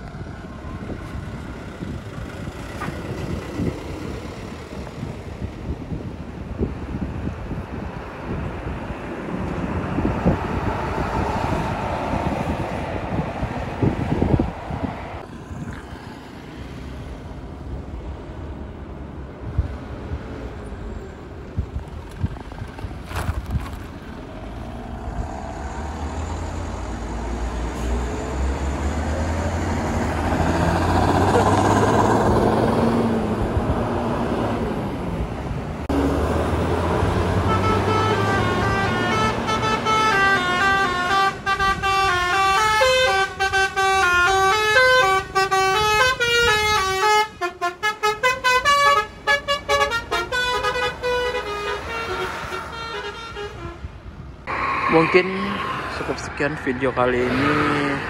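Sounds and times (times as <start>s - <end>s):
bus diesel engine rumbling: 0.0s - 58.0s
multi-tone bus air horn melody: 37.3s - 53.9s.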